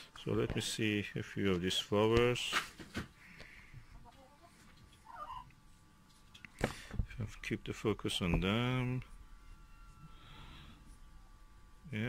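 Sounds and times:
faint animal call: 4.0 - 5.5.

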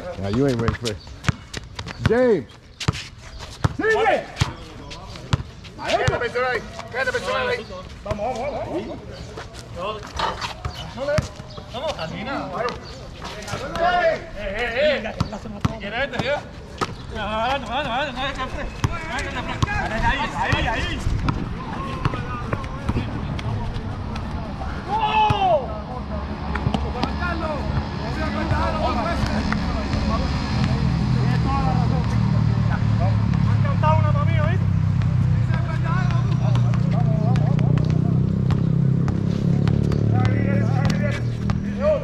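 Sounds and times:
basketball bouncing on concrete: 0.2 - 2.2, 35.0 - 41.7
players shouting: 3.7 - 4.5, 13.4 - 15.1, 17.4 - 38.4
vehicle engine hum: 21.5 - 42.0.

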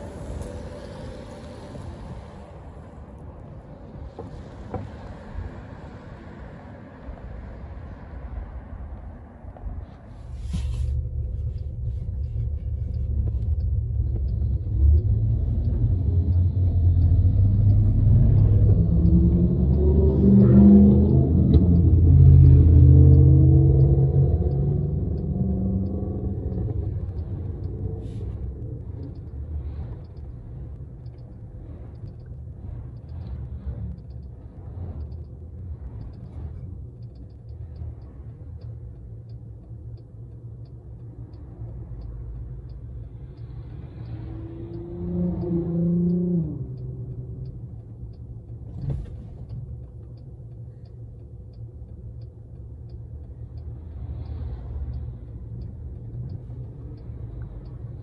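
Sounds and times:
road noise inside vehicle cabin: 0.0 - 58.0.

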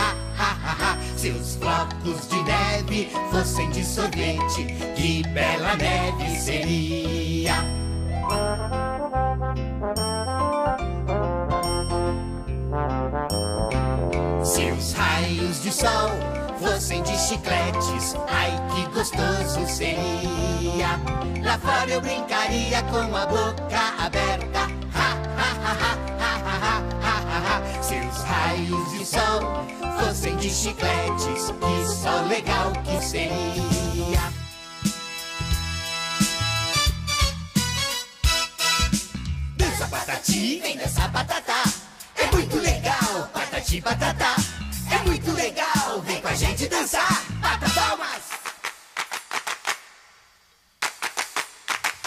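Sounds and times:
backing band: 33.5 - 43.6.

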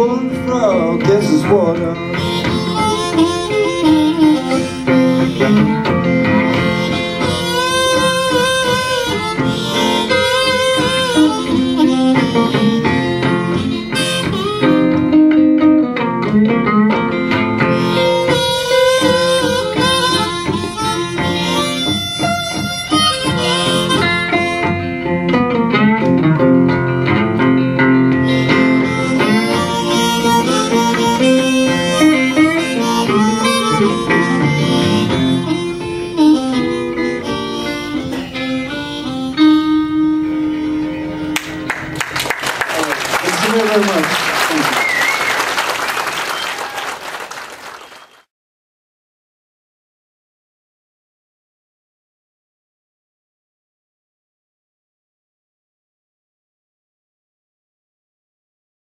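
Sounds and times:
acoustic guitar accompaniment: 0.0 - 46.8
blues harmonica wailing: 0.0 - 48.2.

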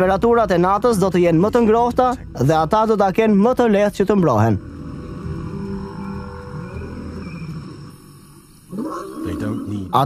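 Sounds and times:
lion roaring: 8.7 - 10.0.

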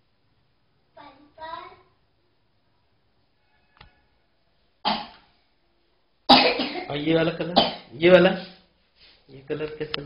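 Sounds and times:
person coughing loudly: 6.3 - 6.9, 7.5 - 7.9.

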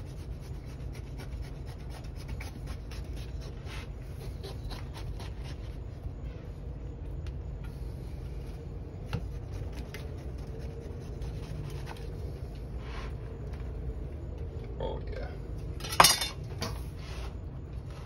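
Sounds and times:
knife sawing through fruit: 0.0 - 5.8, 9.3 - 12.1
steady low hum: 0.0 - 18.0.

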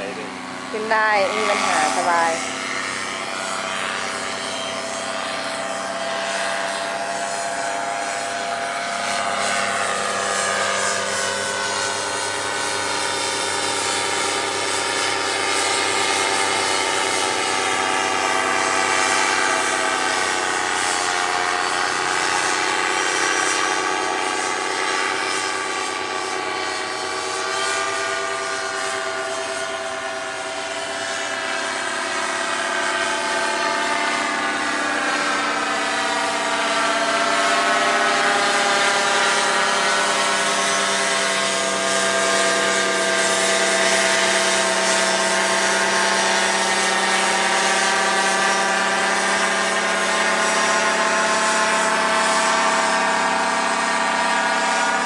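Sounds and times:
paramotor engine droning overhead: 0.0 - 55.0.

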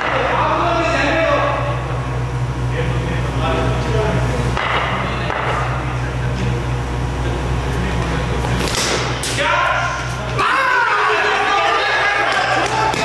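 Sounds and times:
steady low hum: 0.0 - 13.0
men shouting: 9.3 - 13.0.

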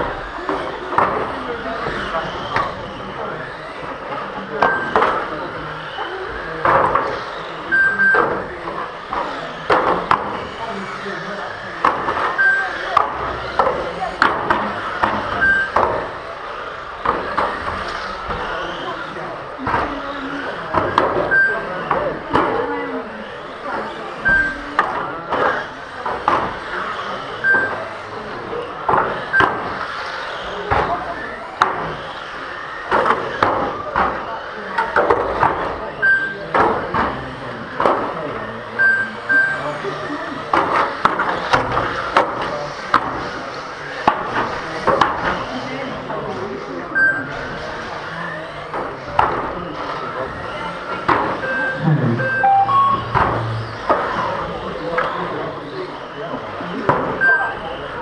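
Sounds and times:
lap counter beeps: 4.6 - 5.1, 7.7 - 8.4, 12.4 - 12.8, 15.4 - 15.8, 21.3 - 21.6, 27.4 - 27.8, 36.0 - 36.4, 38.8 - 39.6, 47.0 - 47.3, 51.4 - 53.6.

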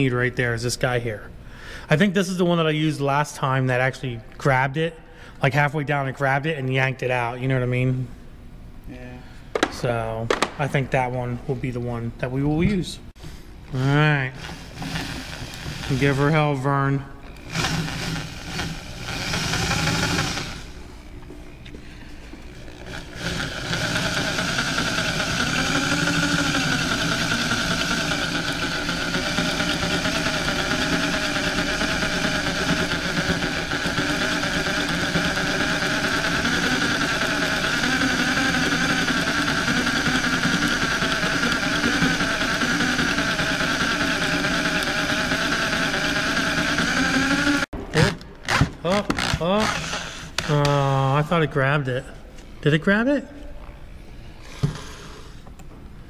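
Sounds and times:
electric drill drilling: 13.8 - 16.6, 17.2 - 20.9, 22.3 - 51.0, 54.4 - 55.4.

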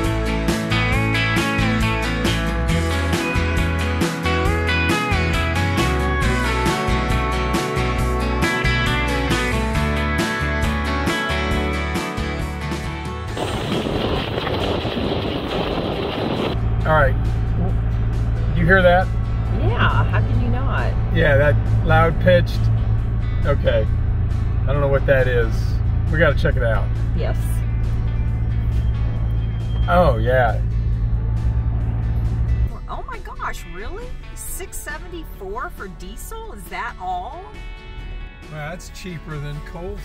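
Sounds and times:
vehicle engine drone: 0.0 - 40.0
dense rushing noise: 13.2 - 20.2
soft background music: 24.6 - 30.8, 32.6 - 40.0.

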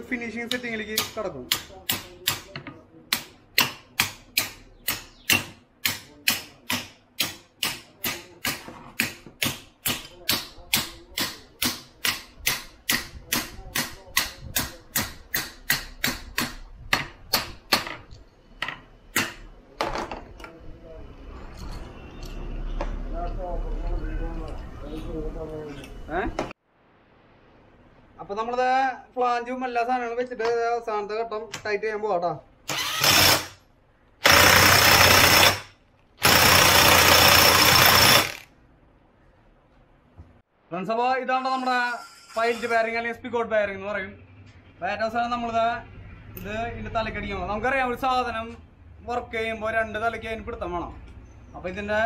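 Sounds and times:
hammer tapping metal: 0.4 - 19.5.

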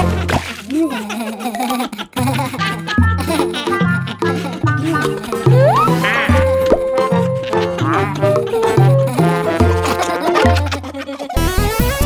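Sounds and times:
bouncy background music: 2.2 - 12.0
held tone with pop: 5.4 - 7.0
cartoon whistle glide: 5.5 - 9.1.

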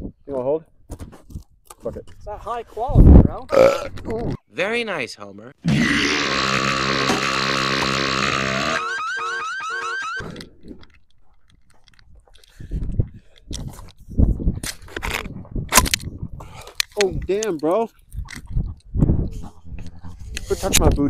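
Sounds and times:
wind on microphone: 2.2 - 4.4, 12.6 - 17.3, 18.0 - 21.0
cartoon sound effect: 5.8 - 10.2
electronic warbling tone: 6.9 - 10.2.

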